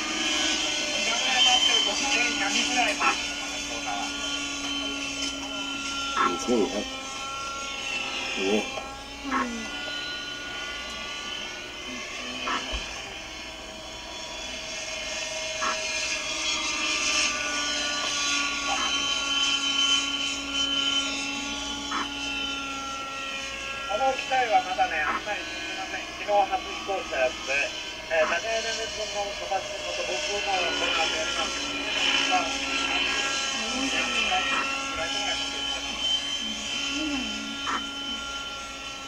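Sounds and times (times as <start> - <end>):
model helicopter engine whine: 0.0 - 39.0.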